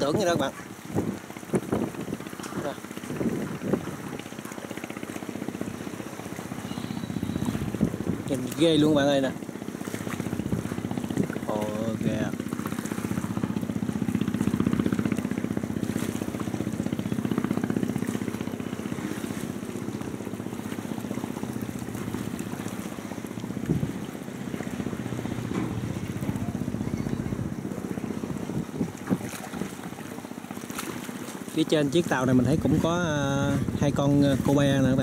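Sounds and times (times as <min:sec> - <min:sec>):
diesel engine throbbing hum: 0:12.1 - 0:28.9.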